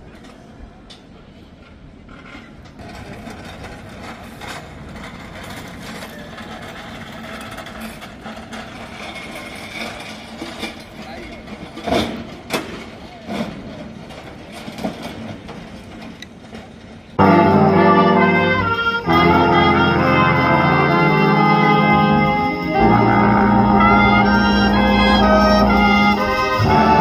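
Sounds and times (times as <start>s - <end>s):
pallet jack knocks and clatters: 6.7s - 16.7s
indistinct voices: 17.2s - 27.0s
vehicle engine running: 17.2s - 27.0s.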